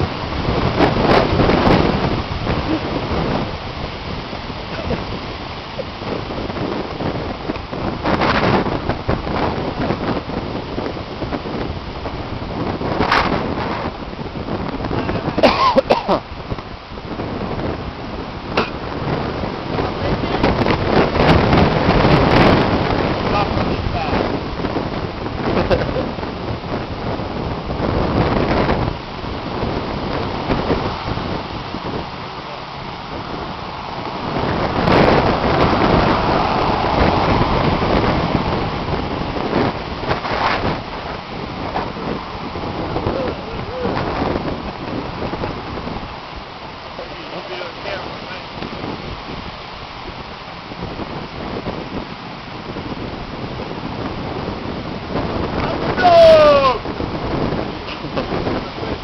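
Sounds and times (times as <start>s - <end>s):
gusty wind on microphone: 0.0s - 59.0s.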